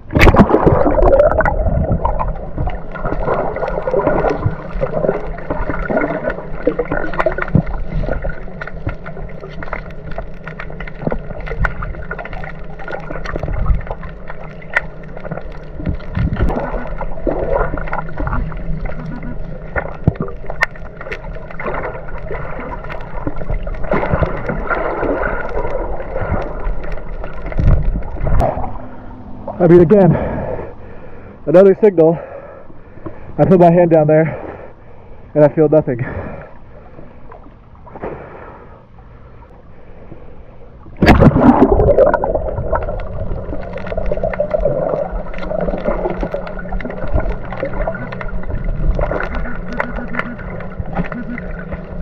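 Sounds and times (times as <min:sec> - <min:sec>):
camera plunging into water: 0:00.0 - 0:08.4, 0:41.0 - 0:51.5
underwater rush of water: 0:00.0 - 0:30.7, 0:40.8 - 0:52.0
small underwater clicks and knocks: 0:01.4 - 0:28.6, 0:42.1 - 0:52.0.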